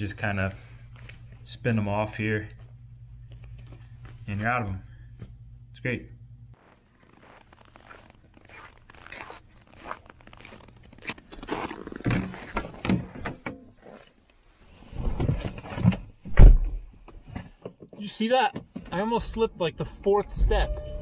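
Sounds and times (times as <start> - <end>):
footsteps crunching through snow: 6.6 - 12.8.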